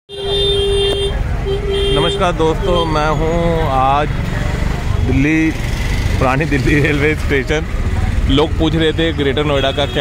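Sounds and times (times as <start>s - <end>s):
vehicle horn honking: 0.1s - 3.0s
low traffic rumble: 0.1s - 10.0s.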